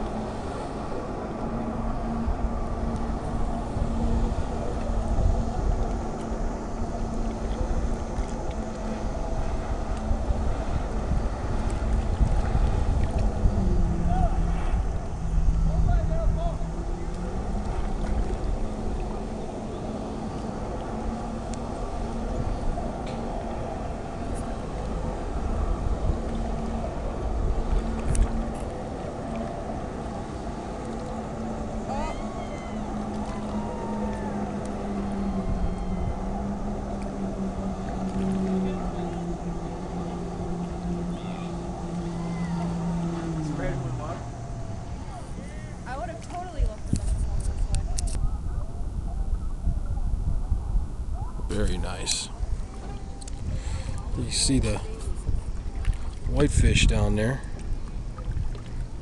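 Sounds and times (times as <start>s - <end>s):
distant jet ski engine drone: 0.0s - 59.0s
wind rumble on microphone: 0.0s - 59.0s.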